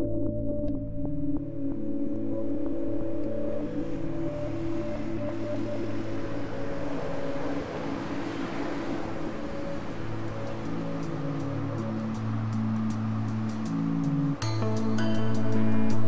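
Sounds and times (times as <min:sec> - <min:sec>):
ambient music with low chords: 0:00.0 - 0:16.0
wash of noise: 0:02.2 - 0:16.0.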